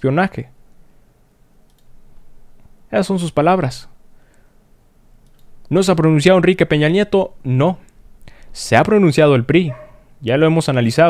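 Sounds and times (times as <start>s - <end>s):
soft clicks: 1.6s - 2.8s, 5.2s - 5.8s.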